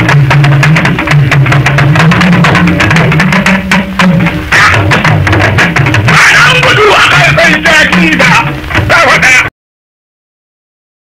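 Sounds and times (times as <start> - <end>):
deep sliding pitched drum line: 0.0 - 9.2
hand drums in fast rhythm: 0.0 - 9.5.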